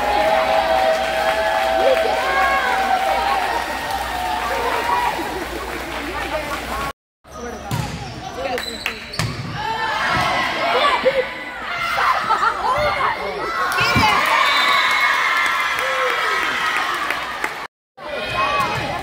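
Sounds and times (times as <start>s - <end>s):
people calling out and cheering: 0.0s - 6.9s
sneakers squeaking on court floor: 7.3s - 9.5s.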